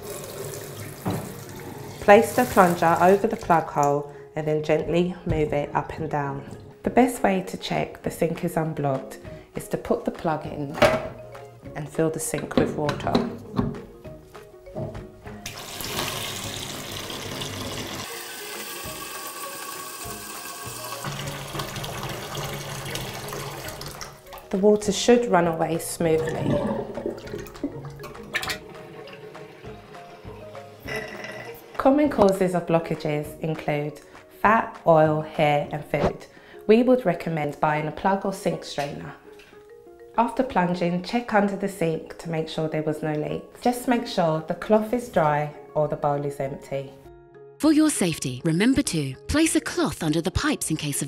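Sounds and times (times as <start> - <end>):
tap water splashing into sink: 0.0 - 1.5, 15.4 - 18.1, 21.0 - 24.5, 26.1 - 29.5
tap running into steel sink: 1.0 - 1.4.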